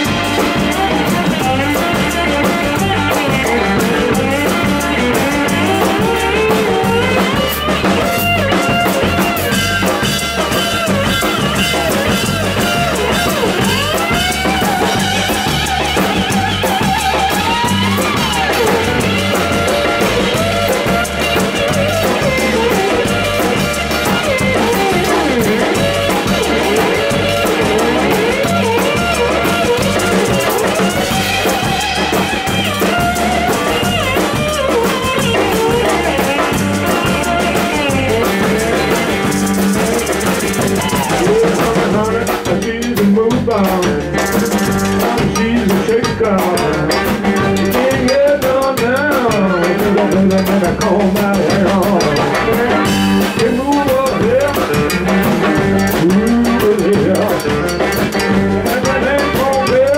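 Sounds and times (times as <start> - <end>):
drum kits: 0.0 - 59.9
live rock band playing: 0.0 - 59.9.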